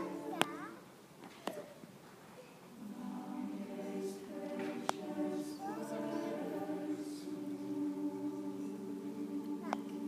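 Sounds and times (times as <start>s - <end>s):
mixed choir singing: 0.0s - 0.8s, 2.8s - 10.0s.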